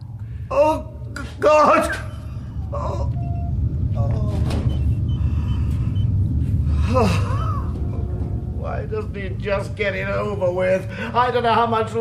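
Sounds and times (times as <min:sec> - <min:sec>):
low rumbling drone: 0:00.0 - 0:12.0
man sighing: 0:06.6 - 0:07.9.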